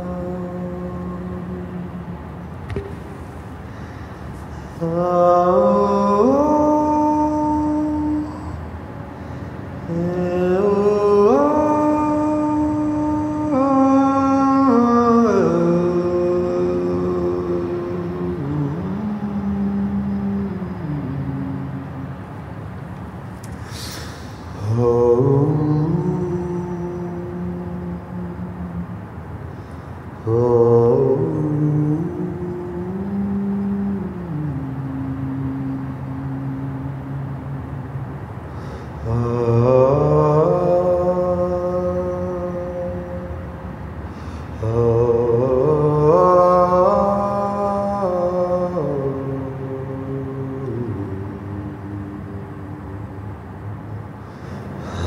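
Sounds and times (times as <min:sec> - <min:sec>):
man singing unaccompanied: 0:00.0 - 0:02.4, 0:04.7 - 0:08.8, 0:09.8 - 0:22.2, 0:24.1 - 0:29.1, 0:30.2 - 0:37.7, 0:38.9 - 0:43.7, 0:44.4 - 0:53.3.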